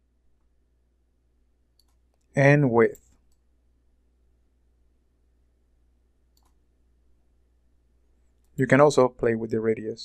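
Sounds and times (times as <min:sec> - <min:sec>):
faint mouse clicks: 0:01.7 - 0:03.5, 0:06.3 - 0:06.6, 0:08.2 - 0:08.6.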